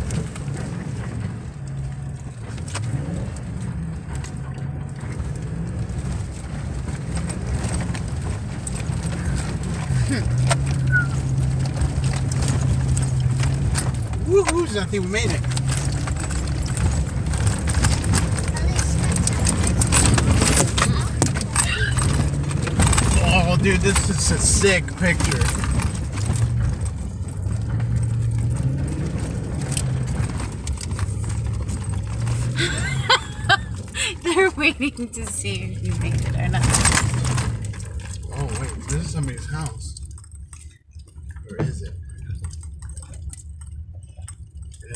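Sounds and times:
tyre and road noise: 0.0 - 44.9
vehicle engine running under load: 0.0 - 44.9.

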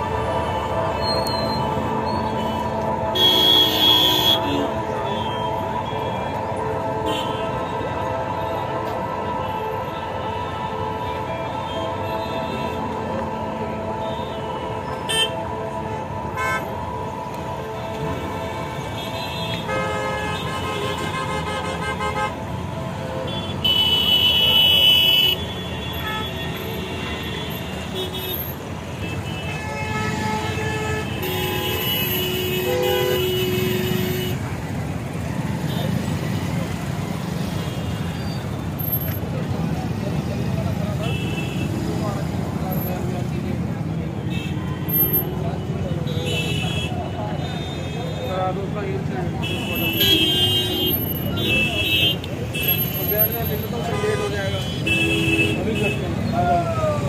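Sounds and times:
road traffic noise: 0.0 - 57.0
vehicle horns honking: 1.0 - 6.2, 6.9 - 7.8, 14.0 - 15.5, 16.4 - 16.7, 18.6 - 22.6, 23.2 - 34.6, 40.9 - 41.9, 45.9 - 48.4, 49.4 - 56.2.

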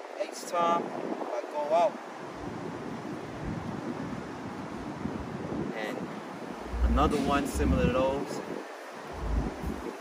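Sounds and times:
wind on microphone: 2.2 - 10.0.

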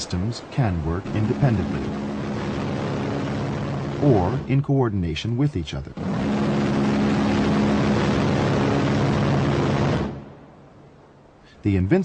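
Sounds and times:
rotary cannon firing burst: 0.6 - 4.6, 6.0 - 10.4.

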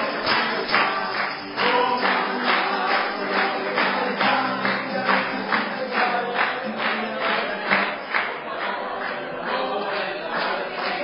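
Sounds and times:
quick percussive beat: 0.0 - 8.0
voices singing together: 0.0 - 11.0.

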